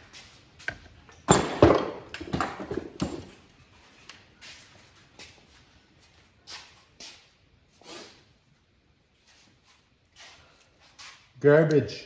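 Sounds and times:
faint scuffs and taps: 3.8s - 7.4s, 9.1s - 11.4s.

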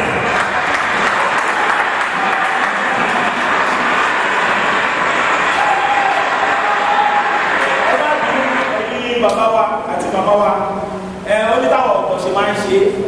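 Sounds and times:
audience applauding: 0.0s - 9.2s.

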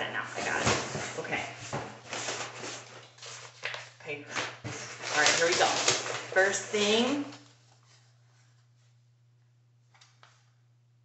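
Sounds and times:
packaging rustling and crinkling: 0.4s - 8.1s.

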